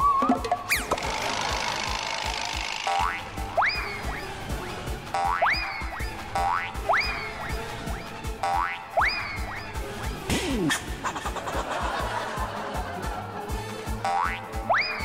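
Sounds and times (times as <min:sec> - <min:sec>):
comedy whistling swoop: 0:00.0 - 0:00.9, 0:03.1 - 0:11.4, 0:14.7 - 0:15.0
background music: 0:00.0 - 0:15.0.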